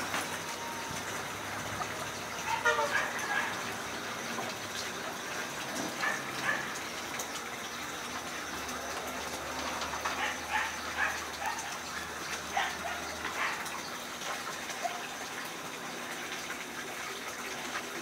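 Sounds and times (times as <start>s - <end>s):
small dogs yelping: 2.4s - 3.7s, 6.0s - 6.8s, 10.1s - 13.8s.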